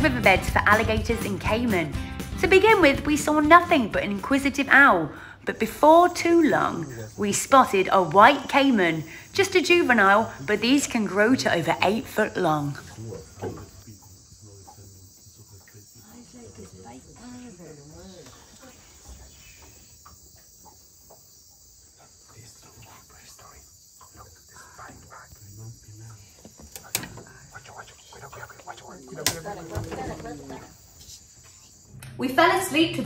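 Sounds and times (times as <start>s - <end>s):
insects chirring: 0.0s - 33.0s
quiet voices: 5.5s - 7.5s, 12.6s - 19.8s, 21.8s - 31.9s.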